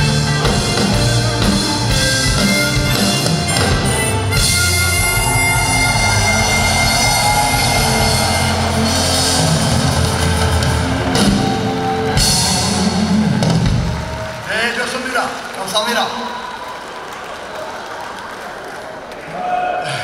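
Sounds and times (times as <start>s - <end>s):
harmonica melody: 0.0s - 13.4s
rock band playing: 0.0s - 14.5s.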